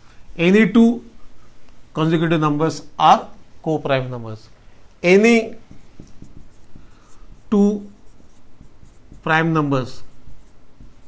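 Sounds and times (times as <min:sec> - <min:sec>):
marker pen writing on whiteboard: 0:05.0 - 0:11.0.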